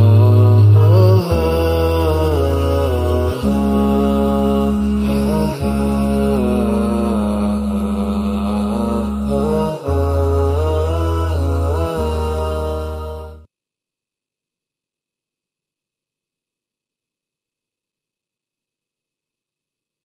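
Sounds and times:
held low tones: 0.0s - 13.5s
person singing melodic line: 0.0s - 13.5s.

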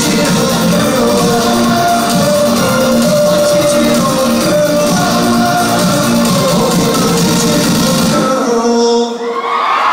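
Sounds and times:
live band playing: 0.0s - 8.6s
person singing: 0.0s - 9.4s.

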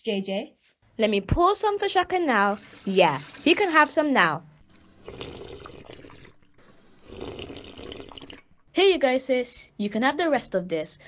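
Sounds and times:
liquid pouring into a bowl: 2.3s - 4.0s, 4.6s - 8.7s.

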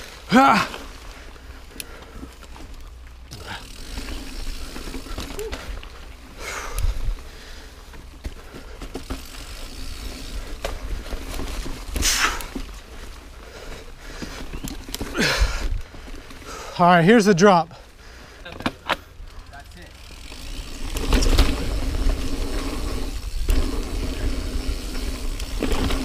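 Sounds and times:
bike tyre and trail rumble: 0.0s - 26.0s.

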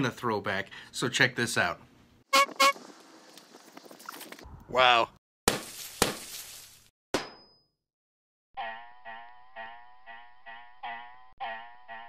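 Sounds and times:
horn toots: 2.3s - 2.8s.

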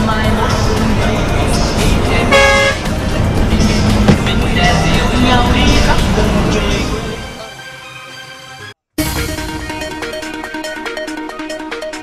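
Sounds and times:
background music: 0.0s - 12.0s
vehicle horn toot: 2.3s - 2.9s.

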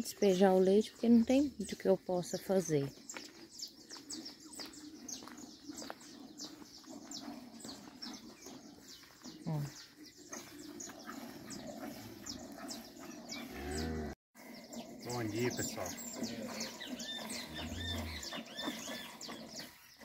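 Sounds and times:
birds chirping: 0.0s - 20.0s
cow lowing: 6.1s - 14.2s, 15.5s - 19.8s.

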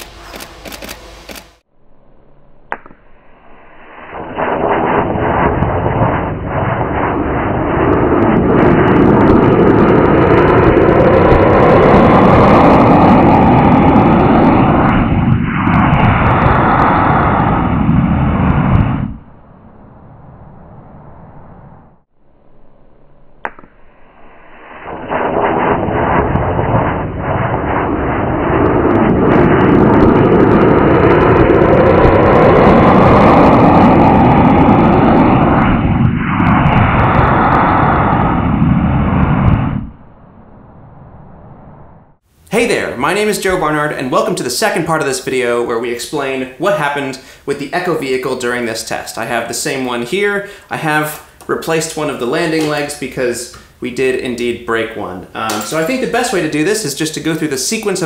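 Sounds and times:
rocket motor roaring: 0.0s - 58.0s.

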